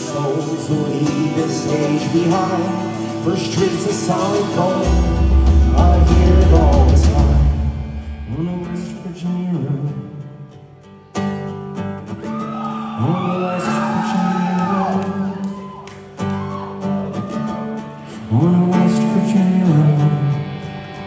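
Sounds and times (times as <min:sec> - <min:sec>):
person singing: 0:00.0 - 0:10.3, 0:12.5 - 0:21.0
full rock band playing: 0:00.0 - 0:10.8, 0:13.4 - 0:21.0
acoustic guitar chords strummed: 0:00.0 - 0:12.4, 0:16.8 - 0:21.0.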